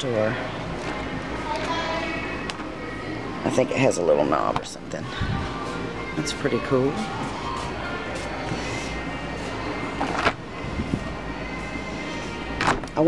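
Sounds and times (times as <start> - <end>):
store hum: 0.0 - 13.0.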